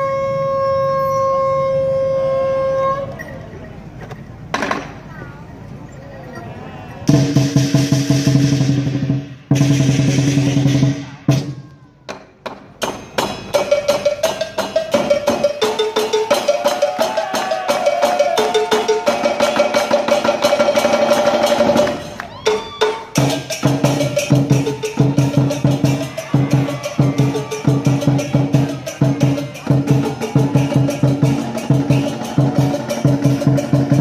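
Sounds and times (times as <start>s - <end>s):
drums and cymbals playing: 7.1s - 11.6s, 12.3s - 34.0s.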